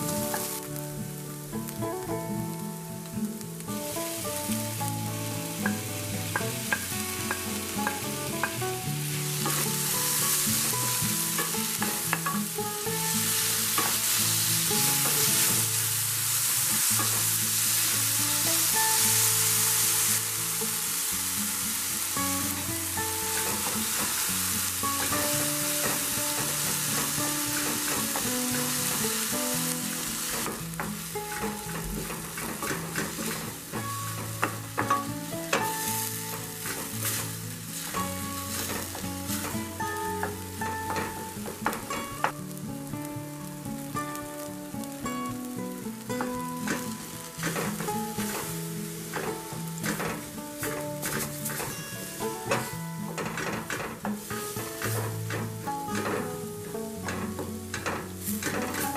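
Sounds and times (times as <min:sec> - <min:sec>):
instrumental background music: 0:00.0 - 0:58.9
vegetables sizzling in oil: 0:00.0 - 0:58.9.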